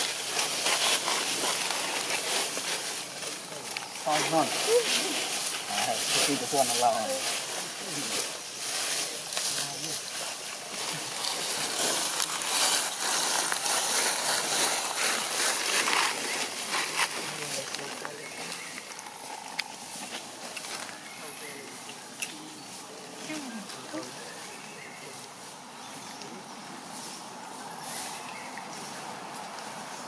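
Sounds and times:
dry leaves crackling: 0:00.0 - 0:30.0
faint voices talking: 0:02.5 - 0:29.5.

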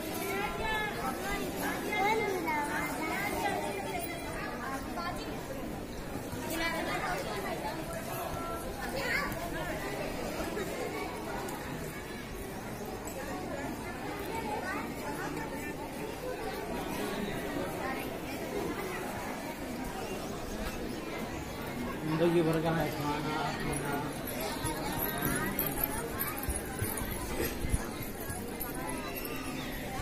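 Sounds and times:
babble of voices: 0:00.0 - 0:30.0
people talking at once: 0:00.0 - 0:30.0.

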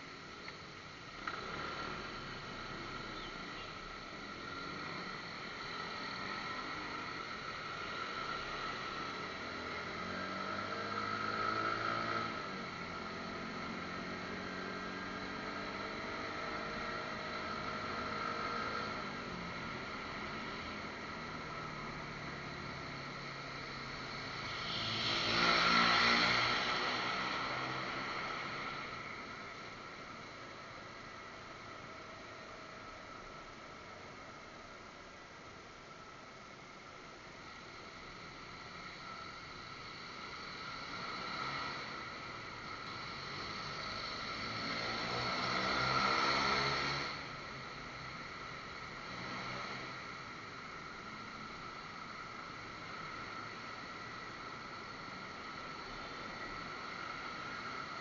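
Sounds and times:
wind and road noise: 0:00.0 - 0:58.0.

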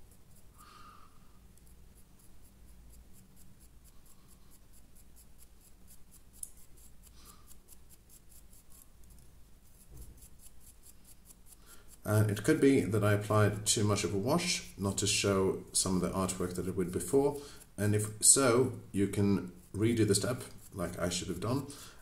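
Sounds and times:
paintbrush scratching on stone: 0:00.0 - 0:21.9.

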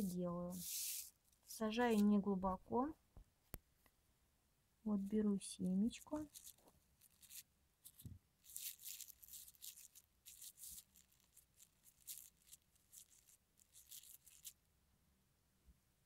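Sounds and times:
plastic film crinkling: 0:00.0 - 0:02.1, 0:05.8 - 0:14.6.

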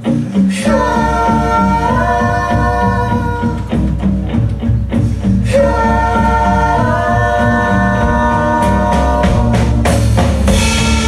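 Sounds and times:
plucked upright bass: 0:00.0 - 0:11.0
voices singing long notes: 0:00.4 - 0:11.0.

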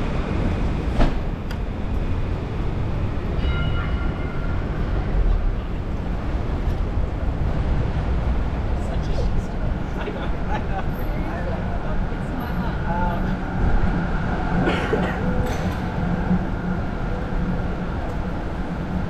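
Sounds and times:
pedestrians' voices: 0:00.0 - 0:19.0
traffic rumble: 0:00.0 - 0:19.0.

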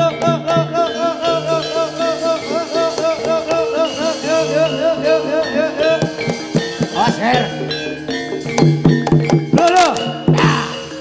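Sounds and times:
drum strokes: 0:00.0 - 0:11.0
metallophone and gong tones: 0:00.0 - 0:11.0.

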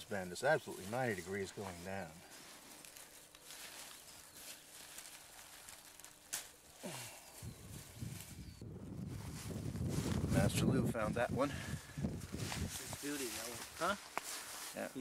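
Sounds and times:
footsteps among crops: 0:00.0 - 0:11.0, 0:11.7 - 0:15.0
rustling of crop stalks: 0:00.0 - 0:15.0.

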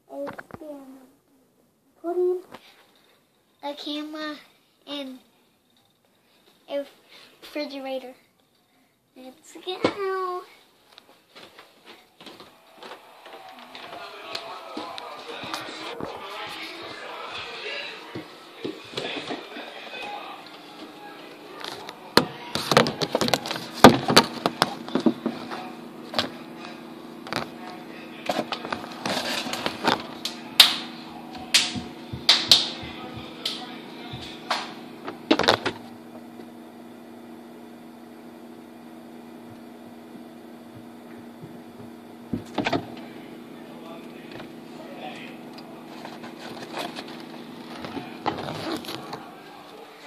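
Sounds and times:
refrigerator hum: 0:09.1 - 0:50.0.

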